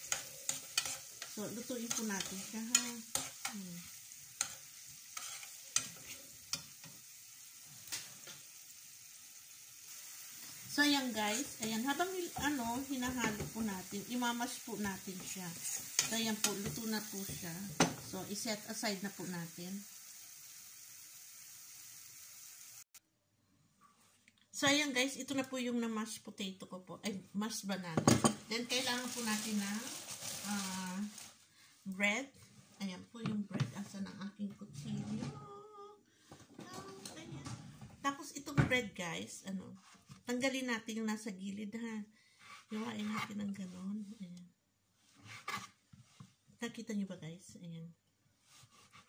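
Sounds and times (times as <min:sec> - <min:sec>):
banana sizzling in a frying pan: 0:00.0 - 0:23.0, 0:28.0 - 0:32.6
knife scraping bread crust: 0:05.2 - 0:05.5, 0:48.5 - 0:49.0.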